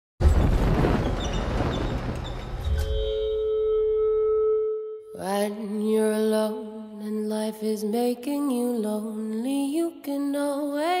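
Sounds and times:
deep rumble: 0.2s - 4.2s
ringing drone of held tones: 2.6s - 5.2s.

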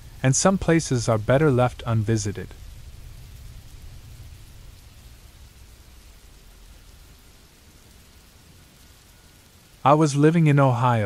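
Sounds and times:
low rumble: 0.0s - 9.6s
rain-like hiss: 0.0s - 11.0s.

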